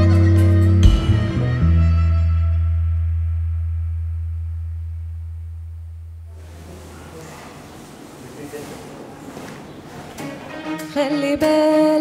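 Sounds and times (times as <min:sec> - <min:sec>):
low bass note: 0:00.0 - 0:06.5.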